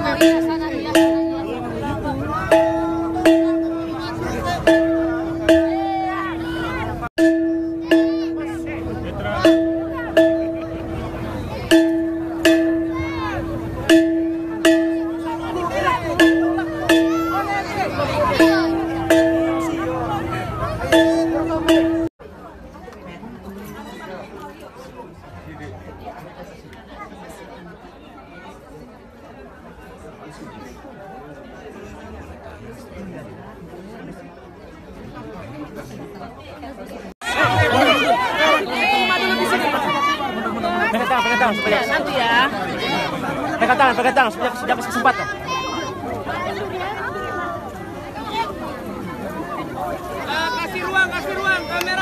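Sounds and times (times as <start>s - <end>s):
indistinct chatter of people: 0.0s - 52.0s.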